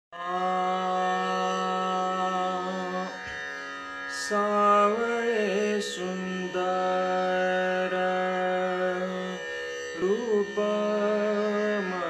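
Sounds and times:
man singing a long held note: 0.2s - 3.4s, 4.1s - 12.0s.

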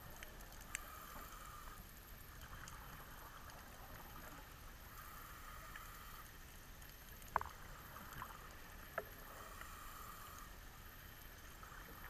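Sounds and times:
faint underwater hiss: 0.0s - 12.0s.

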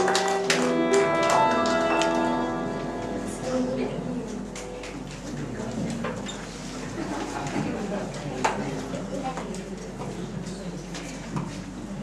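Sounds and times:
audience clapping in rhythm: 0.0s - 2.6s.

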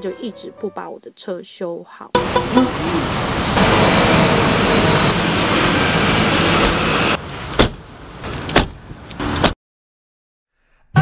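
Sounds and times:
street traffic noise: 2.2s - 9.6s.

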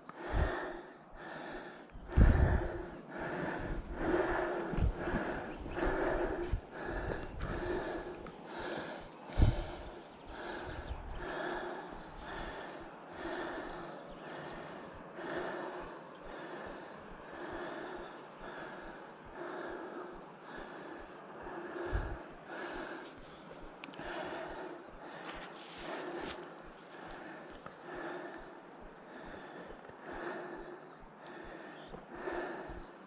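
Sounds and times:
person breathing hard: 0.0s - 33.0s.

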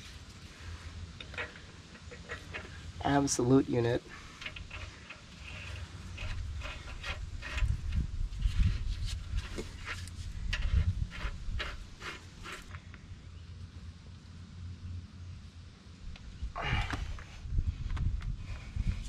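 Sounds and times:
metal parts clicking and tapping: 4.4s - 8.0s.

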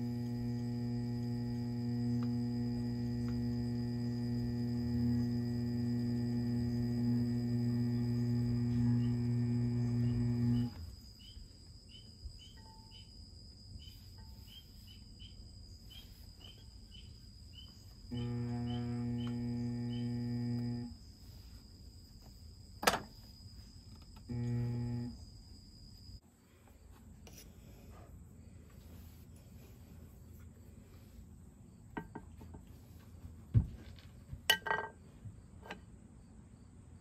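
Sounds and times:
pottery wheel motor humming: 0.0s - 11.0s, 17.8s - 21.6s, 23.9s - 25.3s
faint high chirps: 8.9s - 22.4s.

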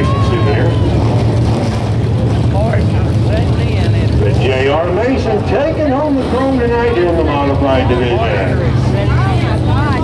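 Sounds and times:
racetrack background rumble: 0.0s - 10.0s.

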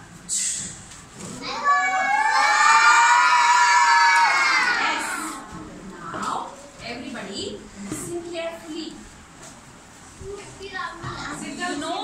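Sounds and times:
children shouting together: 1.4s - 5.5s.

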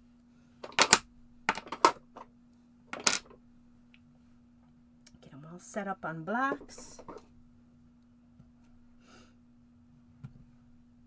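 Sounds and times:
acrylic blocks clacking: 0.6s - 2.0s, 2.9s - 3.3s.

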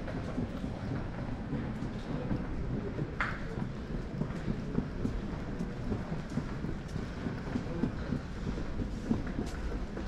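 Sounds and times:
low rumble of terminal ambience: 0.0s - 10.0s.

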